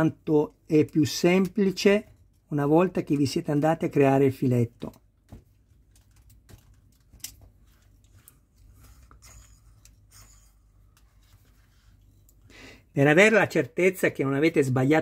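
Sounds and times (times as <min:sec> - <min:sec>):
soft rubbing of plastic parts: 0:05.2 - 0:12.5.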